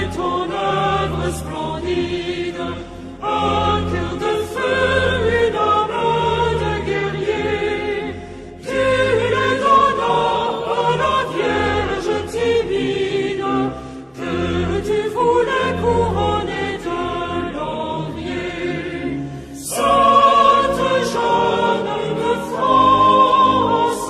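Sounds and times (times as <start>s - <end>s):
choir singing a hymn: 0.0s - 24.0s.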